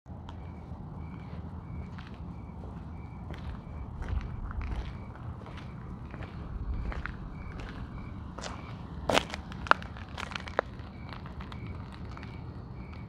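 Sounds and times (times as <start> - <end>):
handheld camera rumble: 0.1 - 13.0
footsteps on dirt and gravel: 0.2 - 13.0.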